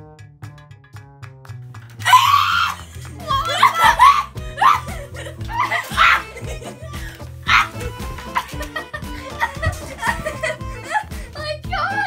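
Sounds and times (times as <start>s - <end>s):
music with plucked notes and bass: 0.0s - 12.0s
person screaming high-pitched: 2.0s - 4.9s, 5.6s - 6.3s, 7.5s - 7.8s.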